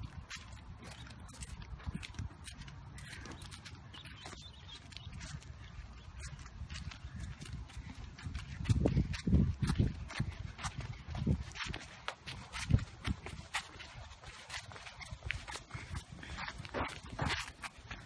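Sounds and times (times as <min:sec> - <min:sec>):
footsteps on concrete: 0:00.0 - 0:18.0.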